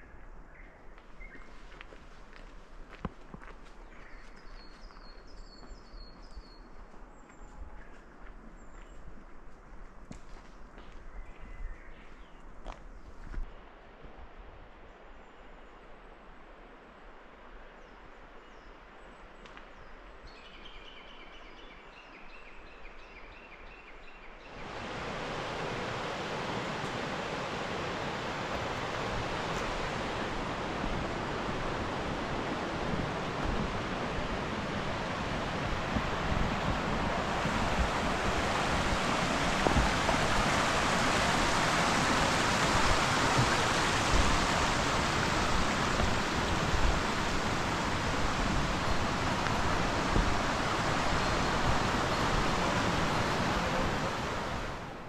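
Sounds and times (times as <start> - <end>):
stream rushing over stones: 24.5 - 55.0.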